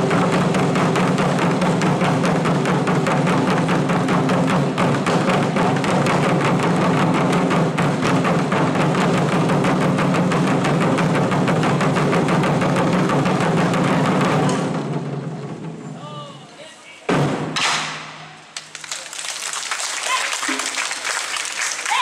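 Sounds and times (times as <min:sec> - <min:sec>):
taiko drums beating fast: 0:00.0 - 0:16.0, 0:17.1 - 0:18.3, 0:20.0 - 0:22.0.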